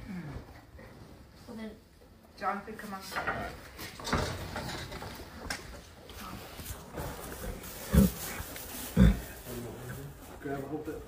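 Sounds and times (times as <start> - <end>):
rustling and shuffling in straw: 6.2 - 11.0.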